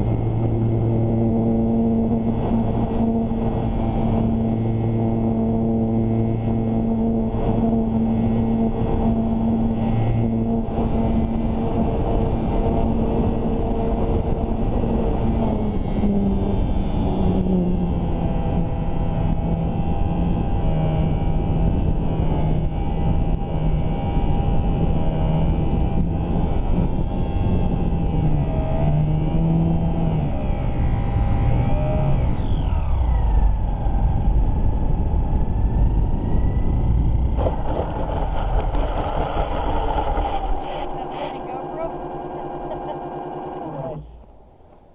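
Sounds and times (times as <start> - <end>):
electric motor and propeller whine: 0.0 - 44.3
plane rattling and scraping on grass: 37.4 - 41.5.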